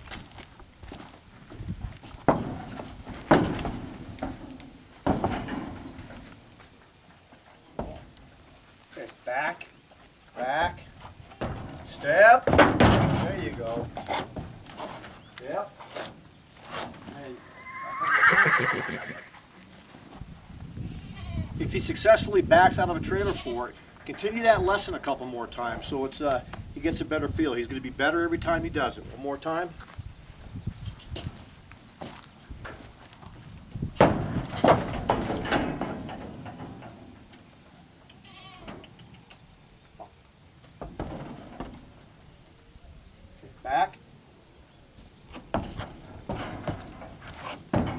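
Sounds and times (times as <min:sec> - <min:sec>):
horse hooves on trailer floor: 0:00.0 - 0:17.4, 0:21.6 - 0:37.7, 0:40.5 - 0:42.6, 0:45.0 - 0:47.9
hoof steps: 0:00.0 - 0:42.8, 0:44.9 - 0:47.9
hooves shuffling: 0:00.0 - 0:47.9
horse whinnying: 0:17.3 - 0:19.4.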